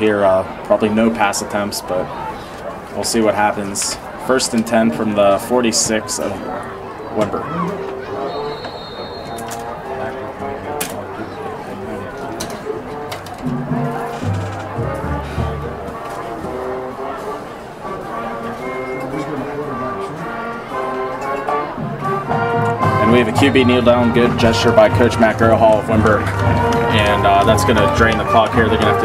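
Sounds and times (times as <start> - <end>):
murmur of voices: 0.0 - 29.0
brass band playing: 4.2 - 29.0.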